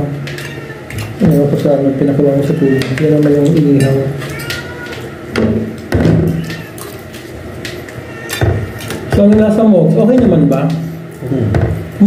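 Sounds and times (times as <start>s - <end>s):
cutlery scraping plates: 0.0s - 9.2s.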